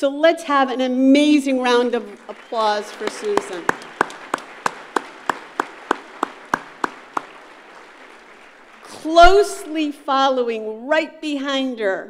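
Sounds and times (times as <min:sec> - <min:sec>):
audience applauding: 0:01.6 - 0:09.7
close hand claps: 0:01.7 - 0:09.6.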